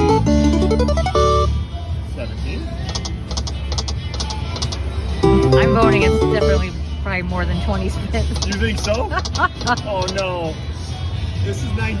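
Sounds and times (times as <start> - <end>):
slot machine win jingle: 0.0 - 1.6, 5.2 - 6.8
casino background din: 7.8 - 10.5.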